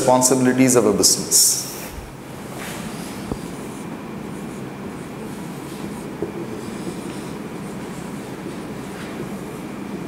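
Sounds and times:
low room hum: 0.0 - 10.0
marker writing on whiteboard: 1.7 - 10.0.

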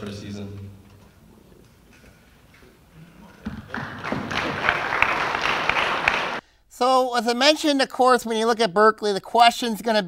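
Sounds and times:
audience applauding: 3.2 - 6.4.

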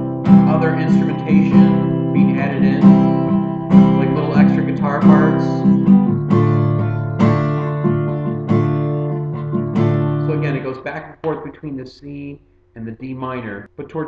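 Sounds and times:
acoustic guitar strumming: 0.0 - 11.5.

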